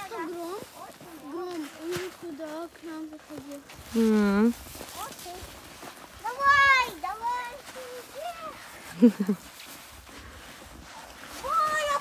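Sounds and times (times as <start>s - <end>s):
child's high-pitched call: 6.2s - 8.6s, 11.4s - 12.0s.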